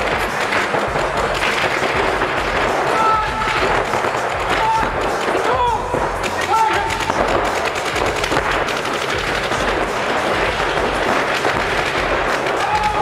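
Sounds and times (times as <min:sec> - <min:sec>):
paintball markers firing: 0:00.0 - 0:13.0.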